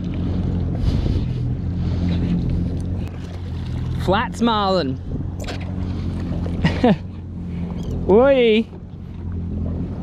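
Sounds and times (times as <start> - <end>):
jet ski engine idling: 0.0 - 10.0.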